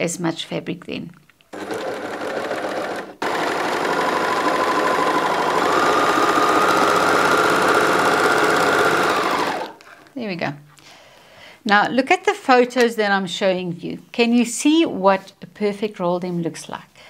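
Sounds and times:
overlocker sewing machine whine: 0:01.5 - 0:09.8.

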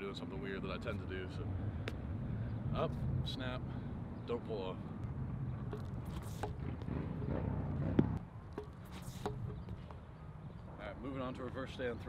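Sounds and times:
sharp thump of shot put throw: 0:05.6 - 0:09.9.

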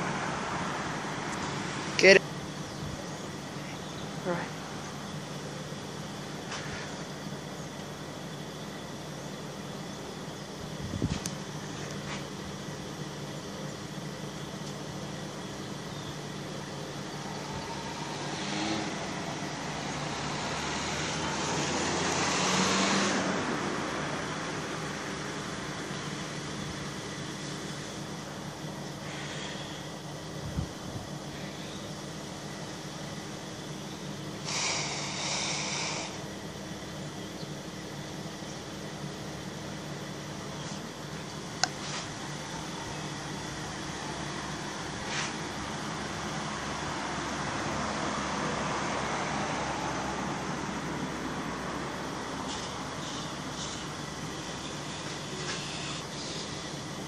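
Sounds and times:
car passing: 0:00.0 - 0:02.6, 0:14.0 - 0:29.8, 0:40.9 - 0:57.0
steady low hum: 0:00.0 - 0:21.8
brief hiss: 0:34.4 - 0:36.2, 0:45.0 - 0:45.4.

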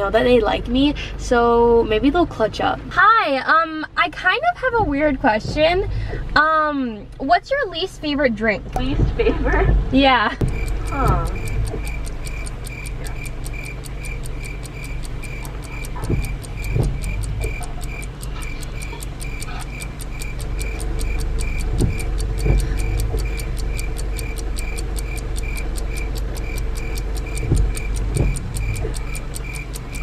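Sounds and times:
low steady hum: 0:00.0 - 0:30.0
clock ticking: 0:08.7 - 0:30.0.

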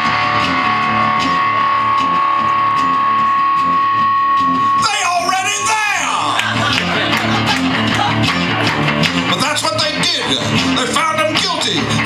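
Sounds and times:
held high guitar note: 0:00.0 - 0:09.3
strummed guitar rhythm: 0:00.0 - 0:12.0.

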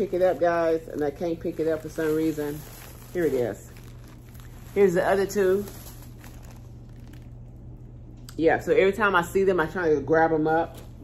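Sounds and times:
plastic packaging crinkling: 0:00.0 - 0:08.2
steady low hum: 0:00.0 - 0:11.0.

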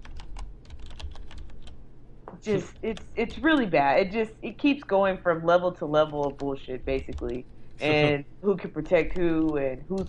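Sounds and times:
keyboard typing: 0:00.0 - 0:01.8, 0:06.0 - 0:08.0
low steady hum: 0:00.0 - 0:10.0.

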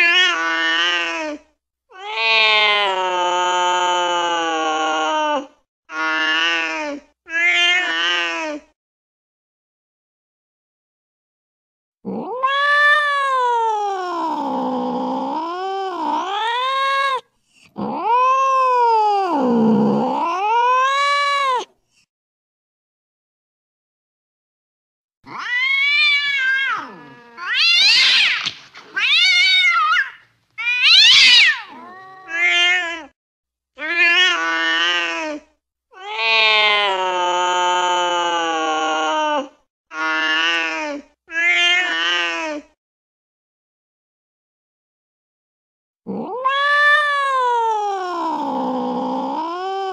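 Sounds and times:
cats yowling and screeching: 0:00.0 - 0:01.4, 0:02.0 - 0:08.6, 0:12.1 - 0:17.2, 0:17.8 - 0:21.7, 0:25.3 - 0:33.2, 0:33.8 - 0:35.4, 0:36.0 - 0:42.6, 0:46.1 - 0:49.9.

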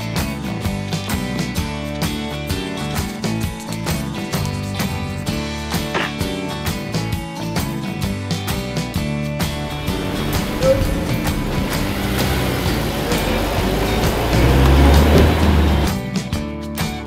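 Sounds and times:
background music: 0:00.0 - 0:17.0
car engine pulling away: 0:09.6 - 0:16.0.

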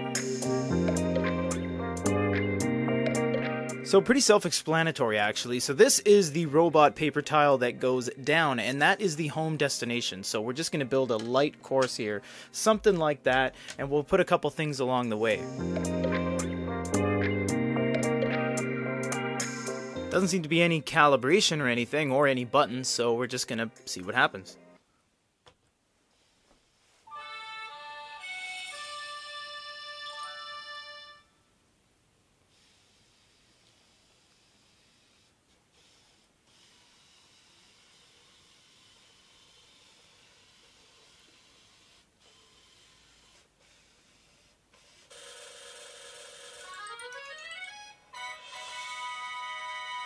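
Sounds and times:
faint steady robot motor sound: 0:32.5 - 0:45.6
toy robot electronic tune: 0:46.6 - 0:50.0.

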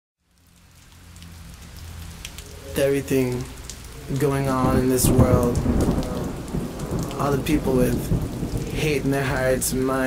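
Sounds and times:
rain falling: 0:00.2 - 0:10.0.

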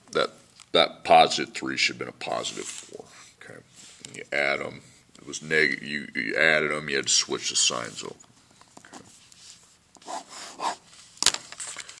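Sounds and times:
pen scratching on paper: 0:09.1 - 0:10.9.

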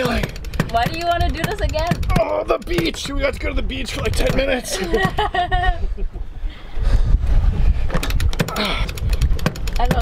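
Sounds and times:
winch pawls clicking: 0:00.0 - 0:05.0, 0:08.0 - 0:10.0
wind rumbling on microphone: 0:00.0 - 0:10.0
man laughing: 0:04.4 - 0:06.2.

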